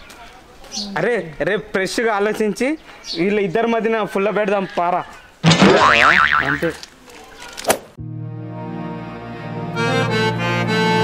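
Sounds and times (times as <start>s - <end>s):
comic boing sound effect: 5.4s - 6.7s.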